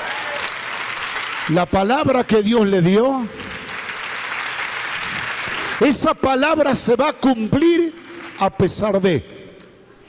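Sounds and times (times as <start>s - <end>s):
crowd applauding: 0.0s - 6.7s, 7.3s - 8.8s
man speaking over microphone: 1.5s - 3.5s, 5.8s - 9.5s.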